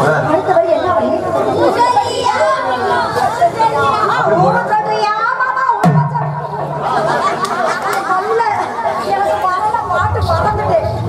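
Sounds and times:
lively chatter of voices: 0.0s - 11.0s.

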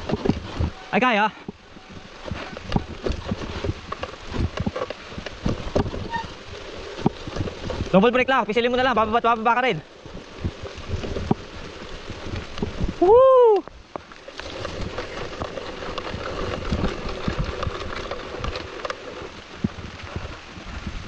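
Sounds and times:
bike knocking and clattering: 0.0s - 13.0s, 13.8s - 21.0s
rider whooping: 13.0s - 13.7s.

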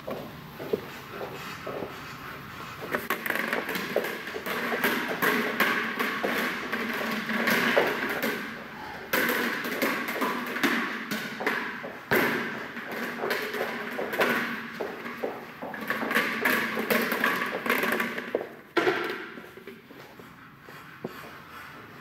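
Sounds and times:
rubber ball bouncing with echo: 2.9s - 19.7s.

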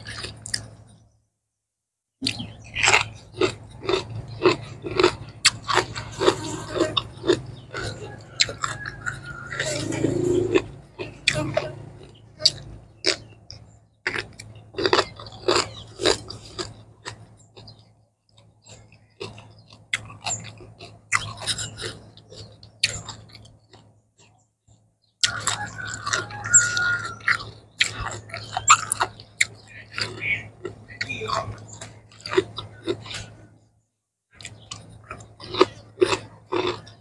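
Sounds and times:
chewing crisp vegetables: 0.0s - 1.2s, 2.2s - 33.7s, 34.3s - 37.0s.

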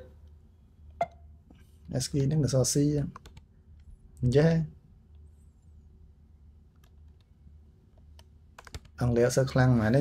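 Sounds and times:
computer keyboard keystrokes: 3.1s - 3.9s, 8.1s - 9.0s.

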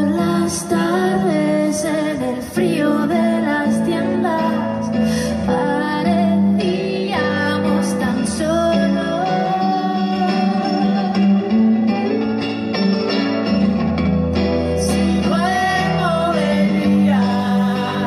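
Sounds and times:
woman singing long notes: 0.0s - 12.3s
electric guitar playing: 0.0s - 18.0s.

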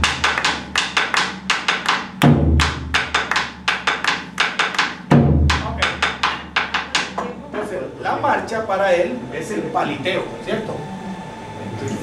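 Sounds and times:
deep bass drum stroke: 5.1s - 6.1s.

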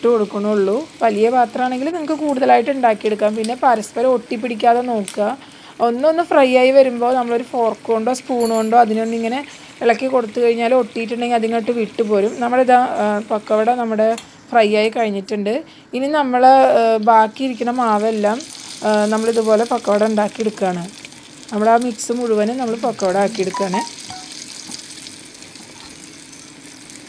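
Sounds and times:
food deep-frying in oil: 0.0s - 14.1s, 16.5s - 27.0s
person talking: 22.9s - 24.2s.

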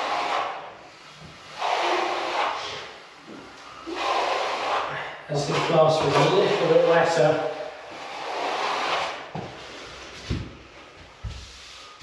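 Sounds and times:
trowel scraping plaster wall: 0.0s - 10.4s.

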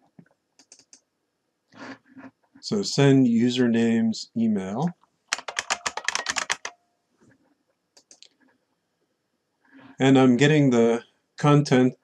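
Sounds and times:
typing on computer keyboard: 0.6s - 1.0s, 5.3s - 6.8s, 8.0s - 8.2s.

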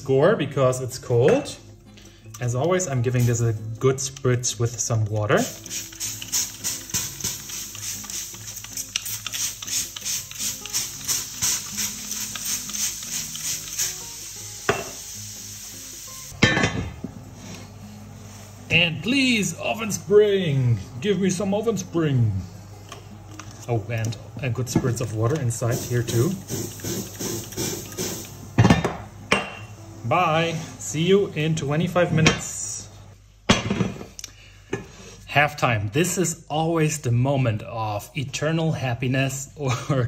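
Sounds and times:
spray bottle squirting: 5.4s - 16.2s, 25.6s - 28.4s
water sizzling on hot iron: 5.4s - 16.4s, 25.5s - 28.4s.

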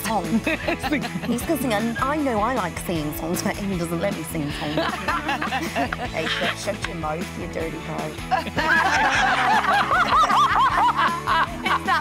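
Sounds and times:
background music: 0.0s - 12.0s
high-pitched laughter: 8.4s - 12.0s.

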